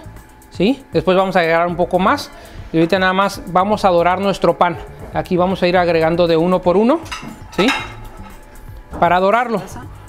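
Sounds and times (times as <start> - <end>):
metal tongs scraping a pot: 7.0 - 8.6.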